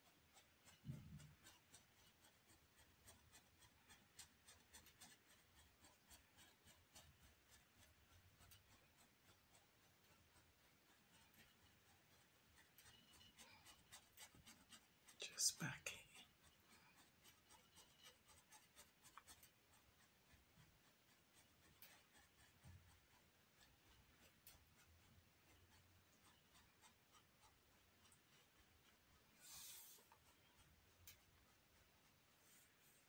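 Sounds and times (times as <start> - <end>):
paintbrush dabbing on canvas: 0.0 - 33.0.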